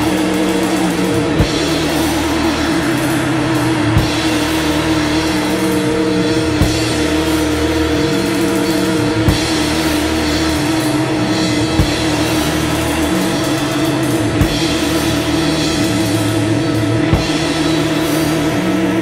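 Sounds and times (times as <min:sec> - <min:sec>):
heavy drum hits: 0:00.0 - 0:19.0
post-rock band playing: 0:00.0 - 0:19.0.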